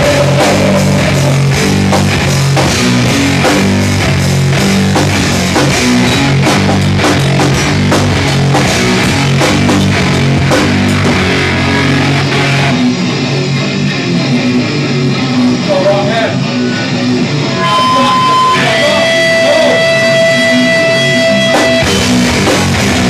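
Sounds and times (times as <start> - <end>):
drum kit hitting: 0.0 - 13.1, 17.6 - 23.0
bass guitar: 0.0 - 23.0
distorted electric guitars: 0.0 - 23.0
heavy rock band playing: 0.0 - 23.0.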